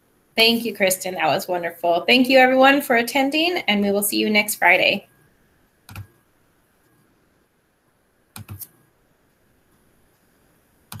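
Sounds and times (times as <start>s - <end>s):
faint background hiss: 0.0s - 11.0s
computer keyboard clicks: 5.9s - 6.1s, 8.4s - 8.7s.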